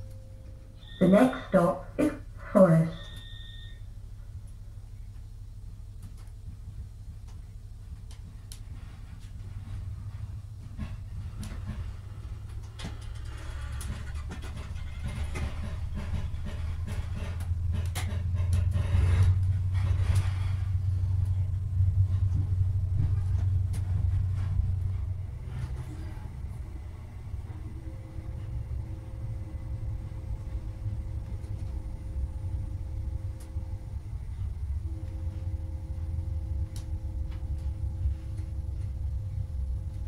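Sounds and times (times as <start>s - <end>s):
low rumble inside train coach: 0.0s - 40.0s
wheels clicking and knocking: 10.6s - 26.0s.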